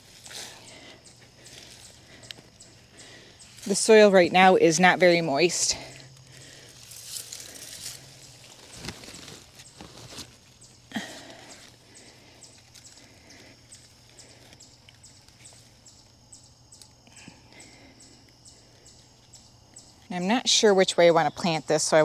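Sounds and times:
foliage and soil rustling: 0.0 - 16.2.

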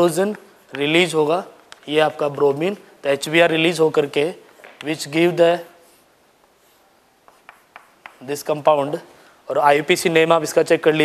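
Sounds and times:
chalk tapping: 0.0 - 2.5, 4.4 - 9.0
chalk strokes on chalkboard: 4.5 - 9.1.

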